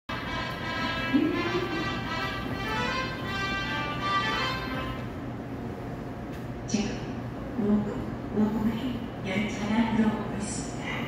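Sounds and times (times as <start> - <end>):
train approach melody over speakers: 0.1 - 5.3.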